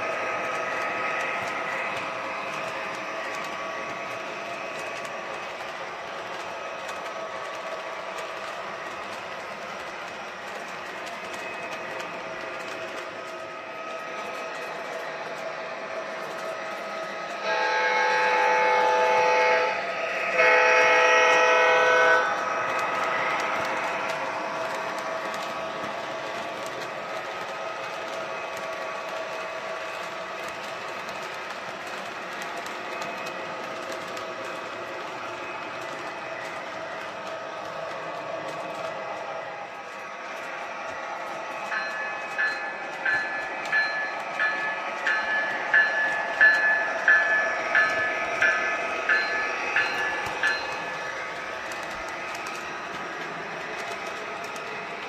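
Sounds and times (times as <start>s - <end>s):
freight cars rolling on track: 0.0s - 55.0s
model train running: 0.0s - 55.0s
model train horn blasts: 17.4s - 22.4s.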